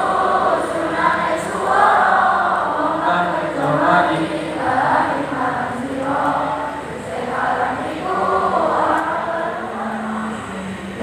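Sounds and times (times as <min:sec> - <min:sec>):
large choir singing: 0:00.0 - 0:11.0.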